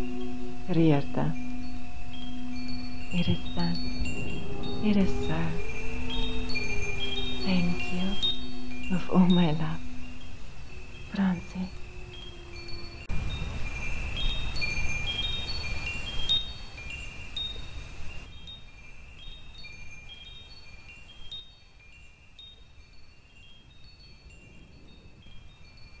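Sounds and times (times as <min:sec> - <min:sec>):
wind chimes ringing: 0:00.0 - 0:26.0.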